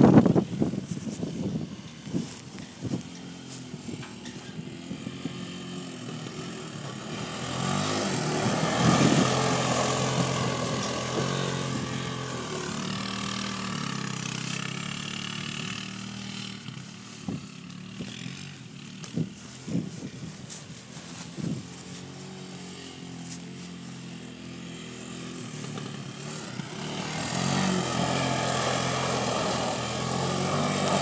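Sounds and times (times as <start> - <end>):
atv engine passing by: 1.2 - 31.0.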